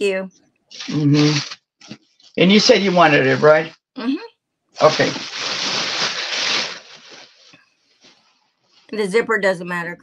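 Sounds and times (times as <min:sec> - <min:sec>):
plastic bag rustling: 0:04.8 - 0:08.9.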